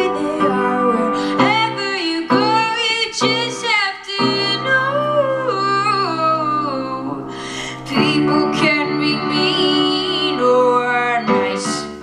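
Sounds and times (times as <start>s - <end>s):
piano chords: 0.0s - 12.0s
woman singing slow song: 0.0s - 12.0s.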